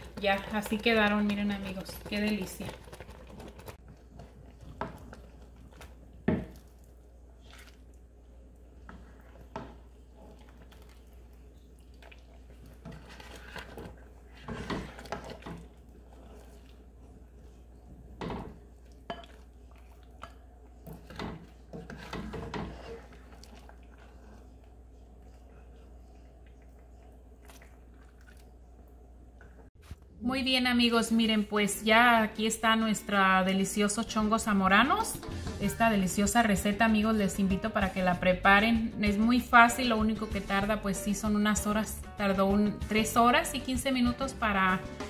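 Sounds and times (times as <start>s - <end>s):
spoon scraping stone pot: 0.0s - 3.8s.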